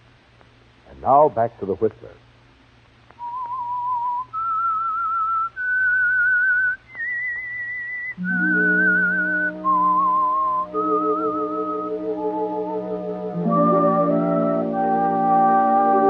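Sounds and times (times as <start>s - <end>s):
person whistling a melody: 3.2s - 16.0s
sustained instrumental chords: 8.2s - 16.0s.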